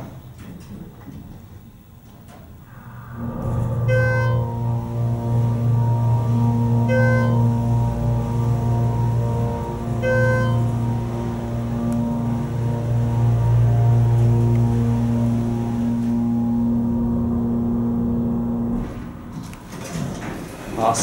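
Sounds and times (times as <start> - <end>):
elevator pump motor humming: 2.7 - 21.0
elevator chime: 3.2 - 19.0.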